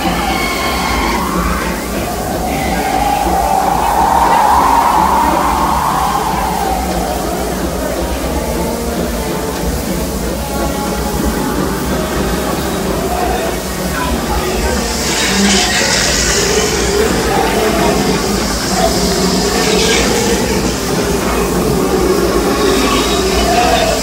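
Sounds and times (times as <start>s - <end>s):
steam hiss: 0.0s - 24.0s
steam train rumbling on track: 0.0s - 24.0s.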